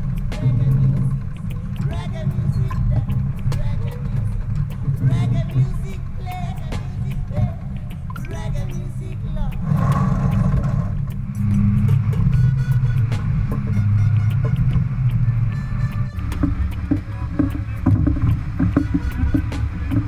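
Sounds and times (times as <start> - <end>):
music playing: 0.0 - 20.0
water rushing along hull: 0.0 - 20.0
wind rumbling on microphone: 0.0 - 20.0.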